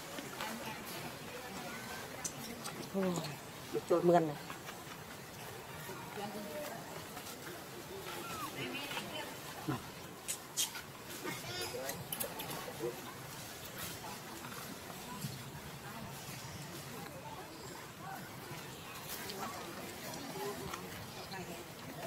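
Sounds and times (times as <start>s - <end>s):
faint background voices: 0.0s - 22.0s.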